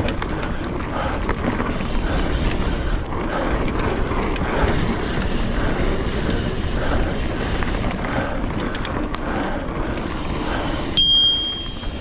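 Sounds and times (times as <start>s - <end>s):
mountain bike rolling on dirt: 0.0s - 12.0s.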